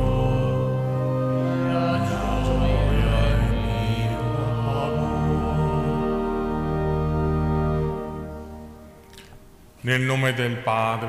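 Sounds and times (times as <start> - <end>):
people singing a hymn: 0.0 - 7.5
church organ chords: 0.0 - 9.0.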